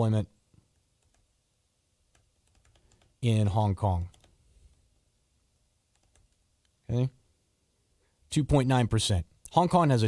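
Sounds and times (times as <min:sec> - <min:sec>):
typing on laptop keyboard: 0:00.8 - 0:01.3, 0:02.1 - 0:03.2, 0:04.1 - 0:04.4, 0:05.9 - 0:06.4.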